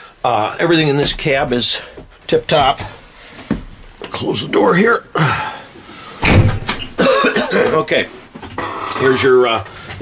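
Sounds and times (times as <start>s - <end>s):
cab door slamming: 6.2s - 7.0s.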